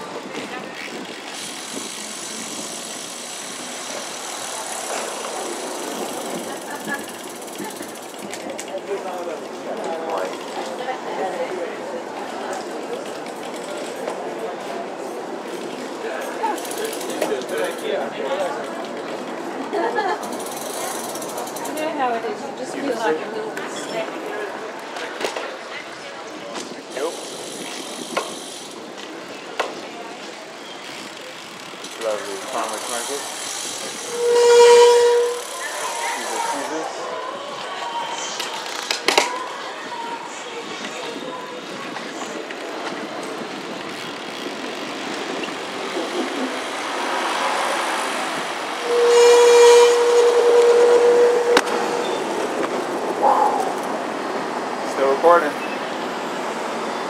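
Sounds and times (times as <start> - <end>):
road traffic: 0.0 - 57.0
loud horn tones: 33.8 - 36.5, 48.7 - 52.8.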